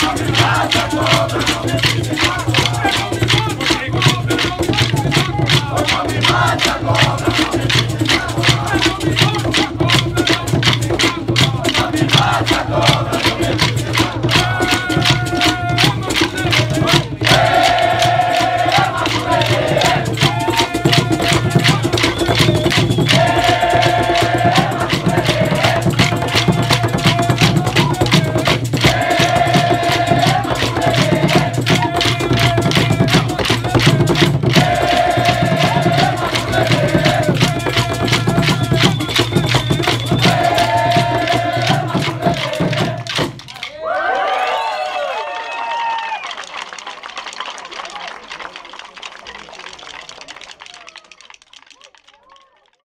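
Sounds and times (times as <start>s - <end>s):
hand drums beating: 0.0s - 43.7s
group singing a chant: 0.0s - 44.0s.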